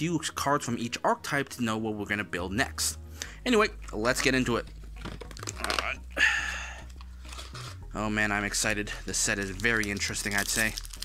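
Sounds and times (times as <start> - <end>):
cardboard and foil packs rustling: 4.0 - 6.0, 6.9 - 7.8, 8.5 - 11.0.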